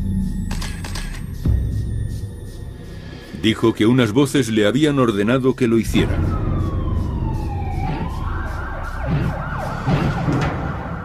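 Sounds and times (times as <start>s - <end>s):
steady low rumble: 5.8s - 10.5s
siren wailing: 5.9s - 11.0s.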